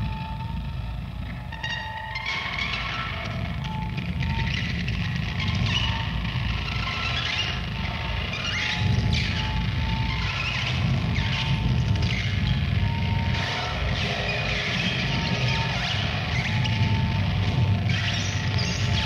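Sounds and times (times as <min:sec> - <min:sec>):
distorted electric guitar: 0:00.0 - 0:19.0.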